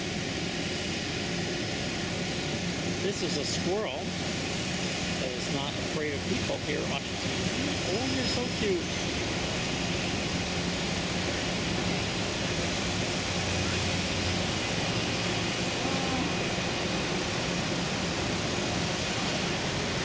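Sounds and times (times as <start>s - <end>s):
distant traffic hiss: 0.1s - 20.0s.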